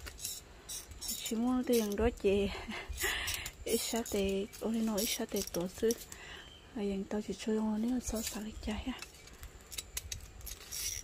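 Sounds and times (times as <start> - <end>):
tongs scraping: 0.0 - 6.1, 7.7 - 11.0.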